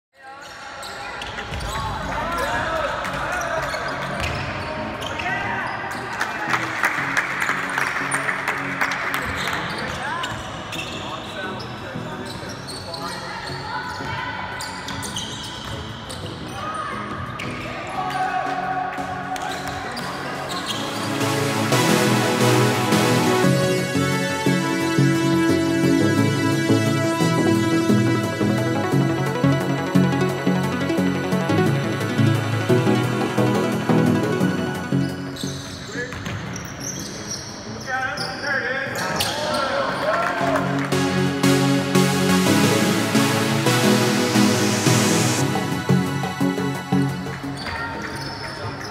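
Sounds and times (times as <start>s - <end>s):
sneakers squeaking: 0.2s - 6.3s, 9.2s - 18.5s, 19.4s - 21.4s, 34.7s - 40.0s, 47.4s - 48.9s
background music: 2.1s - 12.3s, 15.7s - 36.1s, 39.0s - 48.9s.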